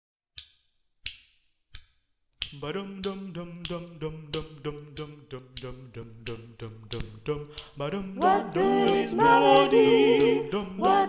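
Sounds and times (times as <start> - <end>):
finger snaps: 0.4 - 11.0.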